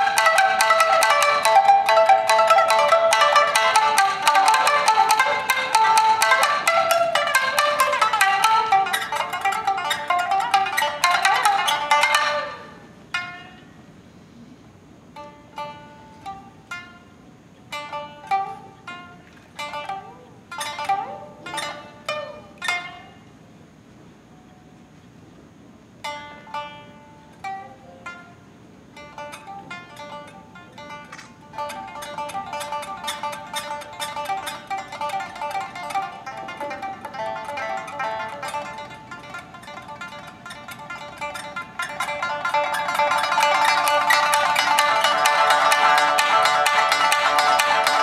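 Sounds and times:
shamisen played solo: 0.0s - 14.5s, 15.1s - 23.4s, 26.0s - 48.0s.

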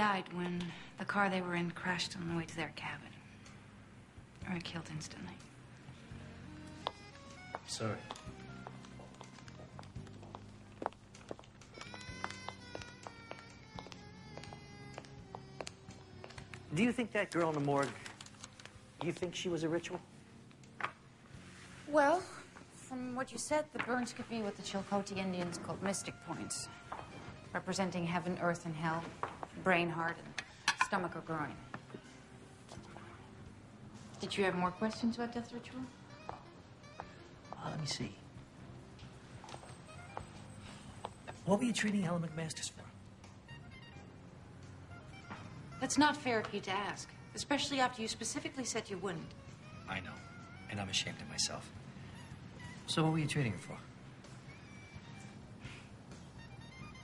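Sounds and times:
soft film score: 0.0s - 57.0s.

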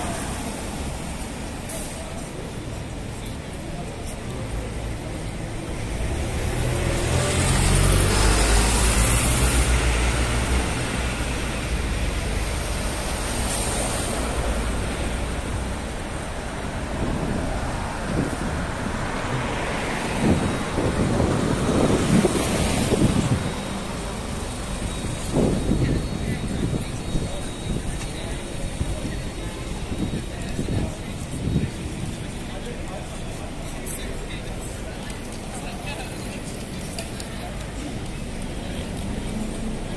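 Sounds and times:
passing cars and vans: 0.0s - 39.9s.

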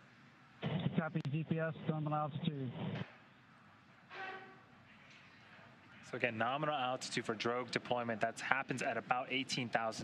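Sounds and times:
communications feed hiss: 0.0s - 10.0s.

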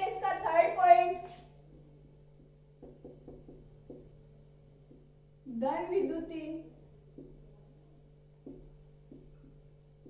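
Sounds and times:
marker tapping whiteboard: 1.3s - 5.3s, 7.1s - 7.7s, 8.3s - 10.0s.

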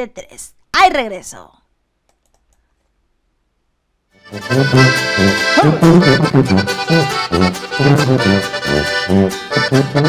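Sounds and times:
faint clicks: 2.0s - 3.0s.

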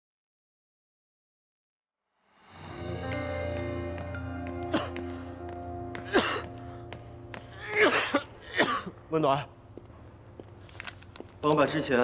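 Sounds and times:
man coughing: 6.0s - 6.6s, 7.6s - 9.1s.

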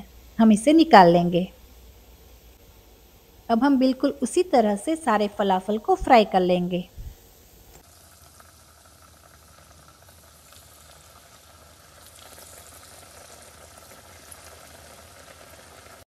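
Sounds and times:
food deep-frying in oil: 7.2s - 16.0s.

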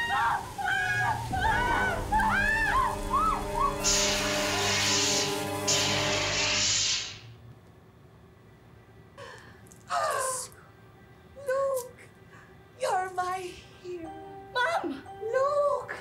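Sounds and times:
hissing spray: 0.3s - 7.3s.

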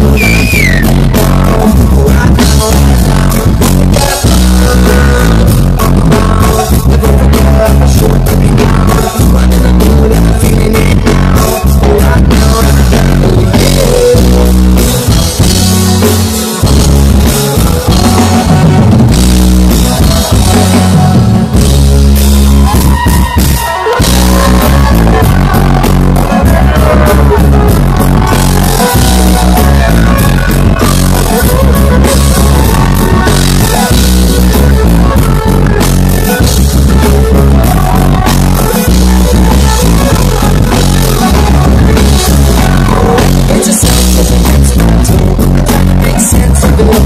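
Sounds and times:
reggae rock band playing live: 0.0s - 47.0s.

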